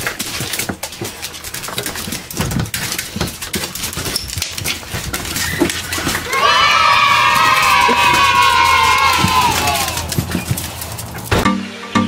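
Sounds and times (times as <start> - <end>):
children cheering: 5.3 - 11.4.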